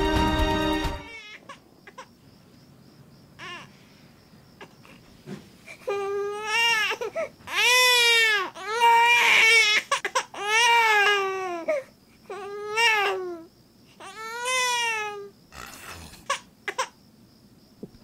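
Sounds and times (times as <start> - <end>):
infant crying: 5.8 - 16.9.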